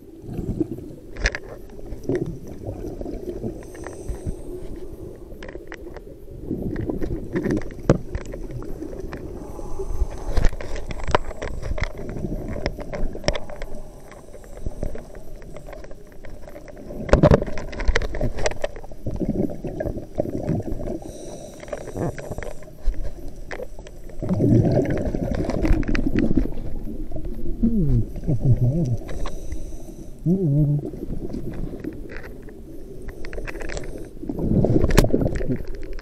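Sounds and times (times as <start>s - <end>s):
exhaled bubbles gurgling underwater: 0.0s - 36.0s
diver breathing through a regulator: 3.3s - 5.2s, 8.8s - 12.4s, 13.3s - 15.8s, 20.9s - 22.9s, 29.0s - 30.4s, 32.8s - 34.8s.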